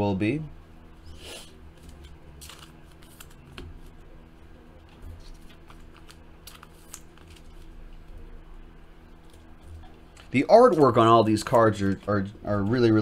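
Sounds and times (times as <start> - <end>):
faint steady hum: 0.0 - 13.0
cards flipped through by hand: 1.8 - 4.0, 4.9 - 7.7.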